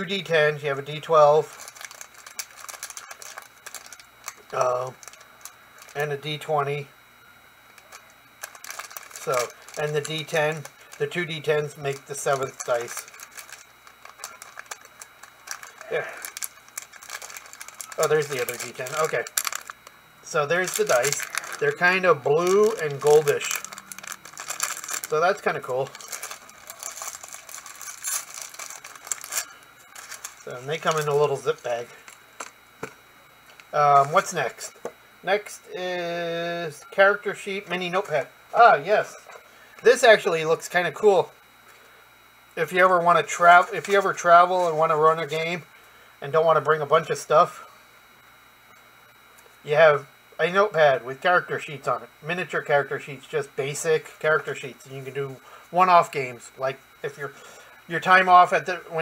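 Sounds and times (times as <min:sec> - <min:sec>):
plastic bag crinkling: 0:00.0 - 0:06.4, 0:07.7 - 0:34.6, 0:43.3 - 0:45.4.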